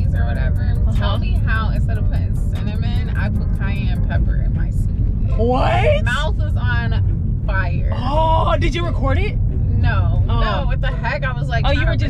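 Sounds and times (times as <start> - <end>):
car cabin rumble: 0.0 - 12.0
voices talking and exclaiming: 0.0 - 12.0.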